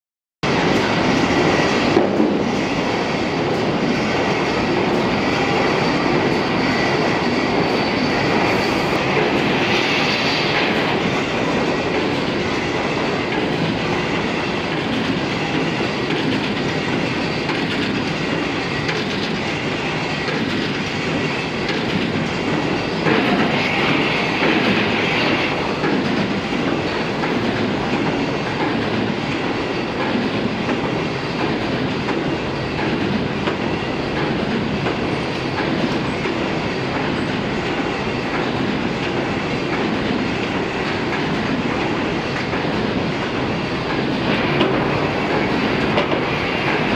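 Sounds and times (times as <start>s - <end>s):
machine mechanical clatter: 14.7s - 23.5s.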